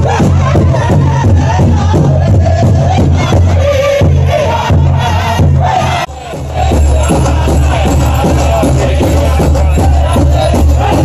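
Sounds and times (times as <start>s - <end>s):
large drum steady beat: 0.0s - 11.0s
voices singing high wavering chant: 0.0s - 11.0s.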